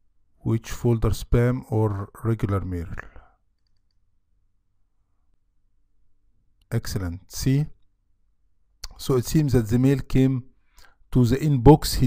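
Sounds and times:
man speaking: 0.4 - 3.3, 6.7 - 7.8, 8.8 - 10.5, 11.1 - 12.0
computer mouse clicks: 3.6 - 4.0.

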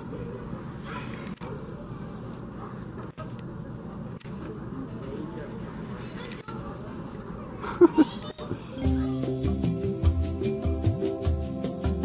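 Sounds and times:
outdoor background noise: 0.0 - 10.6.

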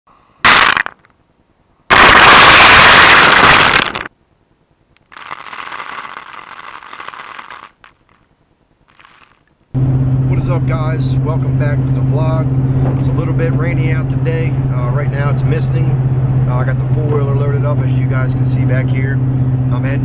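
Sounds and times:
corn kernels pouring onto leaves: 5.1 - 8.2, 8.9 - 9.4.

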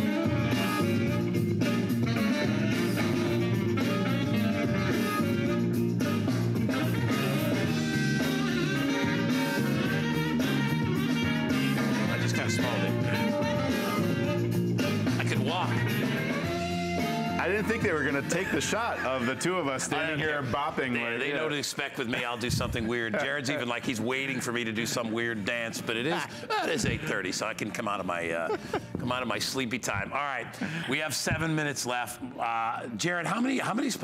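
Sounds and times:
loud music from speaker: 0.0 - 20.5.

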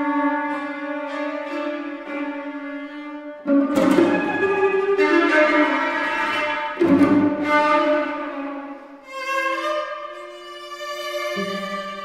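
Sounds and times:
string quartet playing: 0.0 - 12.0.

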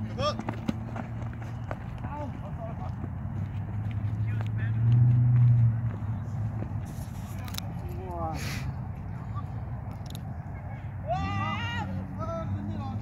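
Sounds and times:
distant players shouting: 0.0 - 4.9, 10.4 - 13.0.

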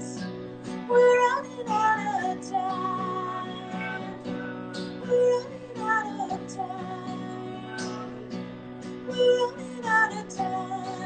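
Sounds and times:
acoustic guitar strumming: 0.0 - 11.0
man and woman singing: 0.9 - 8.4, 9.0 - 11.0.

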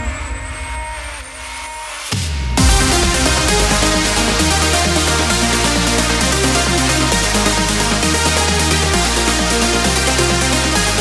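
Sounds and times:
low rumble: 0.0 - 11.0
synth pad chords: 0.0 - 11.0
rising riser effect: 0.4 - 11.0.

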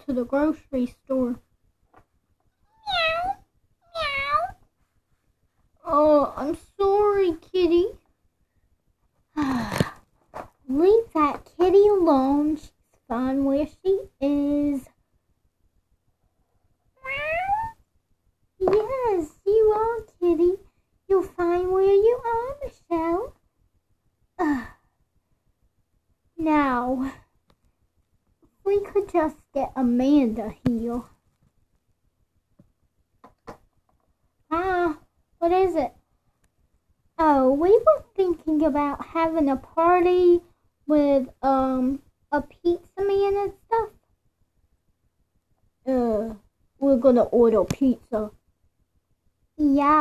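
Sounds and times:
person imitating cat meows: 2.7 - 4.6, 17.0 - 17.8.

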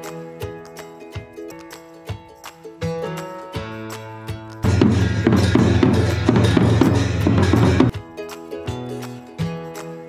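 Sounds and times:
barrel drum beaten fast: 4.6 - 8.0
hand cymbals clashing: 4.6 - 8.0.

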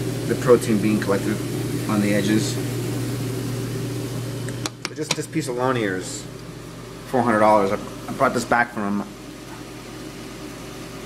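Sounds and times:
pump hum: 0.0 - 11.0.

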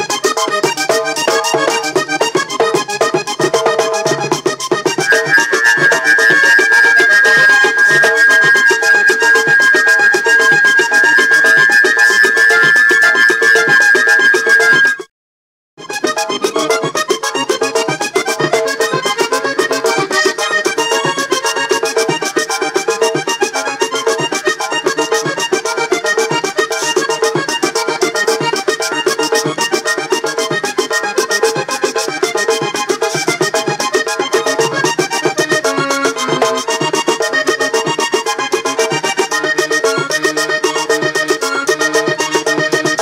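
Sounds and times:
button accordion playing: 0.0 - 15.1, 15.8 - 43.0
drum rhythm: 0.2 - 14.5.

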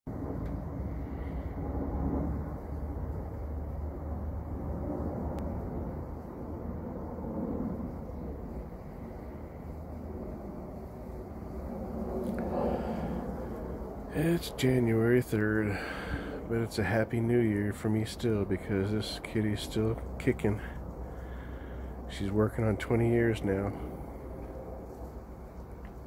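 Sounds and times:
low rumbling background noise: 0.1 - 26.0.

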